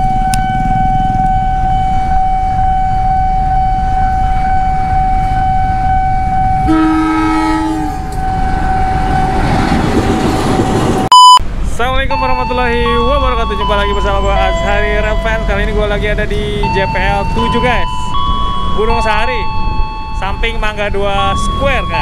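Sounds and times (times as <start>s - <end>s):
loud electronic beep: 0.0s - 6.7s, 11.1s - 11.4s, 12.4s - 22.0s
level crossing warning tone: 0.0s - 11.4s, 12.0s - 22.0s
rumble of passing train: 0.0s - 22.0s
locomotive horn: 0.1s - 9.6s.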